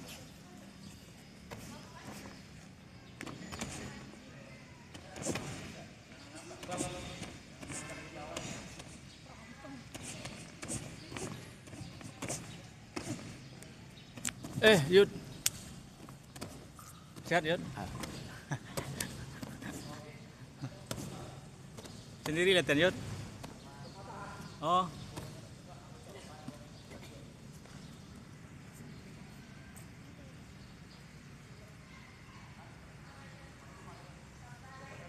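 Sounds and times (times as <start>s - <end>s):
busy gymnastics hall noise: 0.0s - 35.0s.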